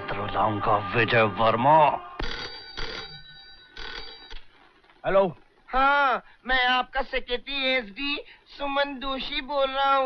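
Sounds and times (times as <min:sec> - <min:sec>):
landline telephone ringing: 0:02.2 - 0:04.6.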